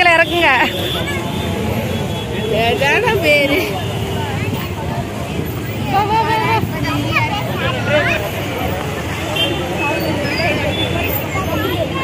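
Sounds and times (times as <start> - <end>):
low rumble of street traffic: 0.0 - 12.0
voices talking over one another: 0.0 - 12.0.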